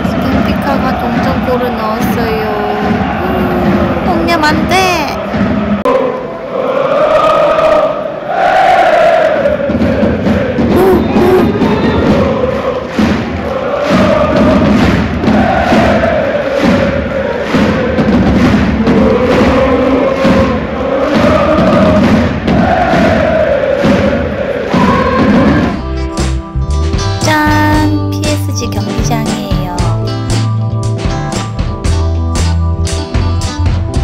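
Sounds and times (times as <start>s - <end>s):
steady drum beat: 0.0s - 5.8s, 9.3s - 34.0s
stadium crowd chanting: 0.0s - 25.8s.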